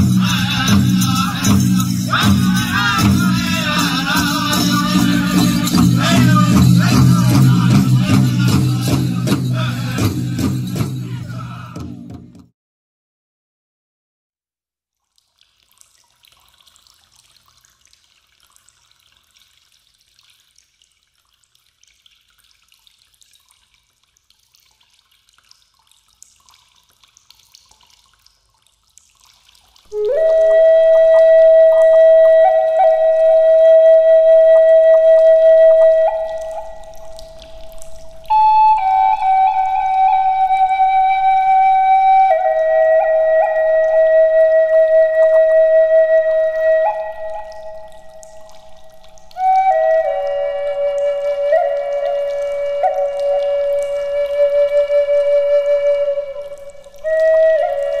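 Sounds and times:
flute-like wind instrument: 0.0 - 11.2, 29.9 - 58.0
dripping water: 0.0 - 12.4, 15.0 - 58.0.

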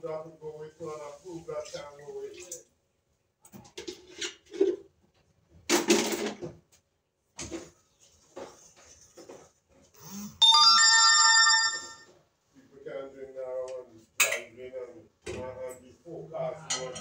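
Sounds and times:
loud bell-like ringing tone: 10.4 - 12.1.

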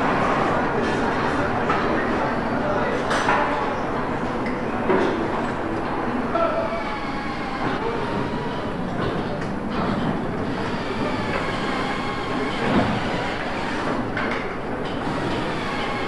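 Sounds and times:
conveyor machinery running: 0.0 - 16.0.

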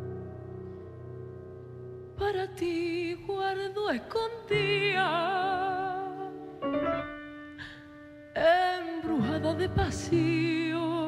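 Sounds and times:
piano accompaniment: 0.0 - 11.0
woman singing with vibrato: 2.2 - 6.4, 8.4 - 11.0.

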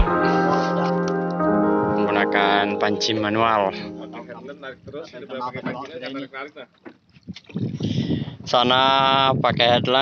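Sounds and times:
person speaking: 1.9 - 6.1
rough wind: 6.9 - 10.0.

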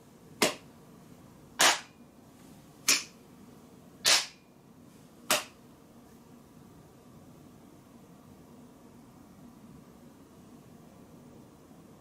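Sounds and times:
sharp hand claps: 0.4 - 0.7, 1.6 - 2.0, 2.9 - 3.2, 4.0 - 4.4, 5.3 - 5.6.

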